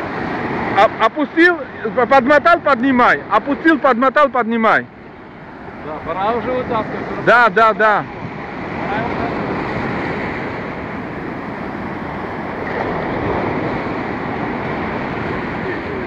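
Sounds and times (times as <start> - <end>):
ocean surf breaking on beach: 0.0 - 16.0.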